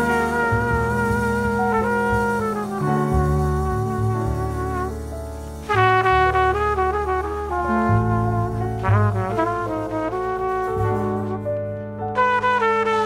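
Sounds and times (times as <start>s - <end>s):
jazz quartet playing: 0.0s - 13.0s
trumpet: 0.0s - 13.0s.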